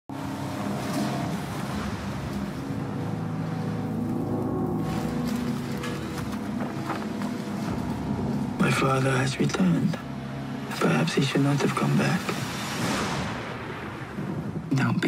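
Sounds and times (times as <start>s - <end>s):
atmospheric noise wash: 0.1s - 15.0s.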